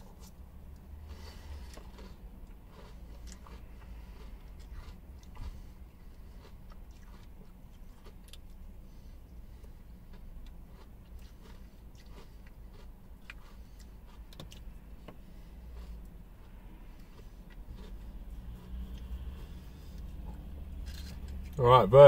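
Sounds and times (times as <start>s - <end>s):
chewing ice cream: 0.0s - 21.6s
steady low hum: 0.0s - 22.0s.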